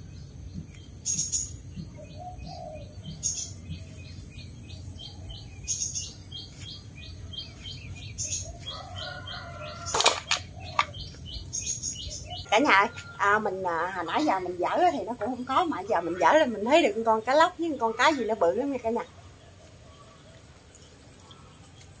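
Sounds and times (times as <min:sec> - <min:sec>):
small birds chirping: 0:00.0 - 0:22.0.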